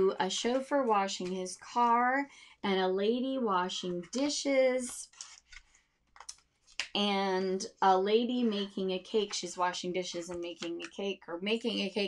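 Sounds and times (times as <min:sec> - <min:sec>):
book pages rustling: 0:04.0 - 0:06.9.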